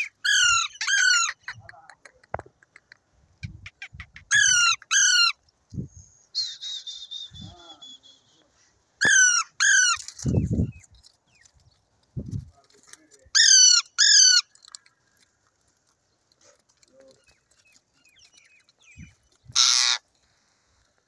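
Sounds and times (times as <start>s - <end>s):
parakeets harsh calls: 9.0s - 10.0s, 19.6s - 20.0s.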